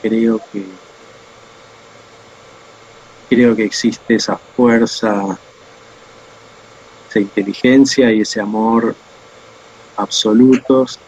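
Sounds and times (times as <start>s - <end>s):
background hiss: 0.0s - 11.0s
faint hum: 0.0s - 11.0s.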